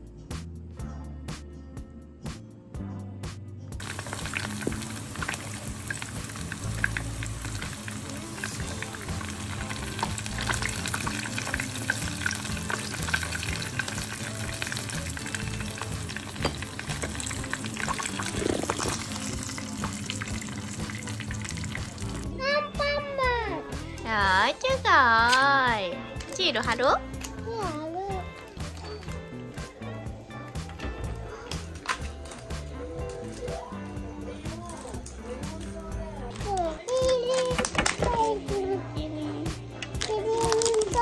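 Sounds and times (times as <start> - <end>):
pastries sizzling in oil: 3.8 - 22.4.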